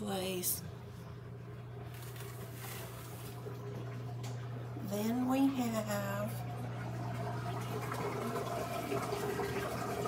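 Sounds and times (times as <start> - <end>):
washing machine running: 0.0 - 10.0.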